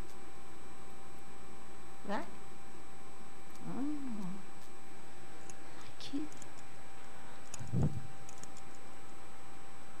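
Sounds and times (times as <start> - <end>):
person humming: 3.6 - 4.4.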